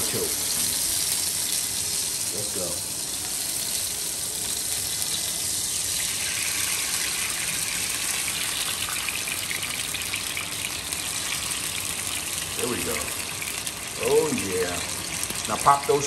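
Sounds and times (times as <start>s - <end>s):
oil sizzling in a frying pan: 0.0s - 16.0s.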